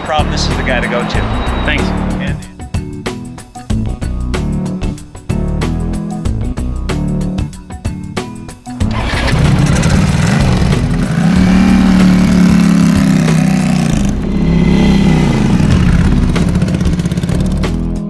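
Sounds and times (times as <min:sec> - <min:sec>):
guitar music: 0:07.8 - 0:18.0
motorcycle engine revving: 0:08.8 - 0:18.0.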